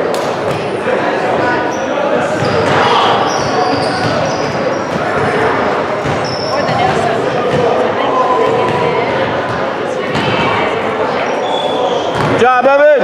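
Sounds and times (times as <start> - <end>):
players and spectators calling out: 0.0 - 13.0
sneaker squeaks: 0.5 - 12.4
basketball bouncing on hardwood floor: 8.5 - 8.9.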